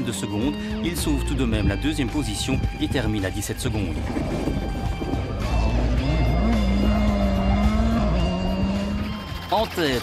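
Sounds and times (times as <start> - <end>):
background music: 0.0 - 10.0
rally car engine: 3.8 - 10.0.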